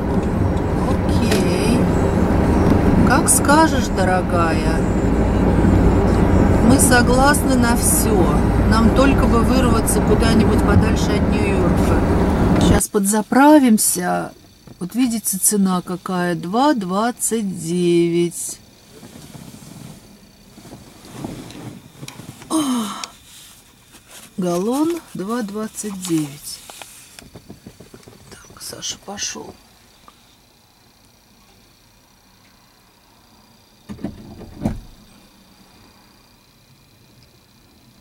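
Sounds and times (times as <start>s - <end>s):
road noise: 0.0s - 12.9s
car engine rumbling: 0.0s - 30.2s, 33.7s - 35.7s.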